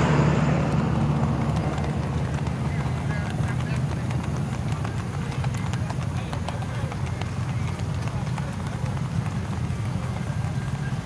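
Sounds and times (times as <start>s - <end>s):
steady low hum: 0.0s - 7.6s
horse hooves clip-clopping: 0.0s - 11.0s.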